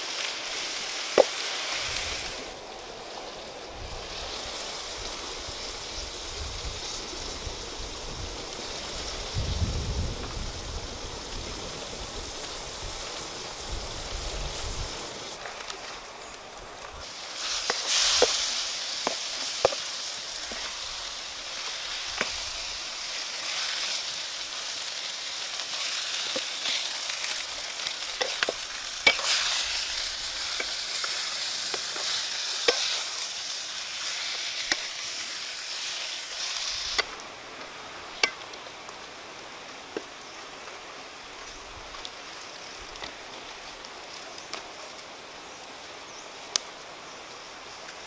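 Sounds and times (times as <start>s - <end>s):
food sizzling in a wok: 0.0s - 48.0s
low hiss: 0.0s - 48.0s
wooden spatula scraping a pan: 26.3s - 31.2s.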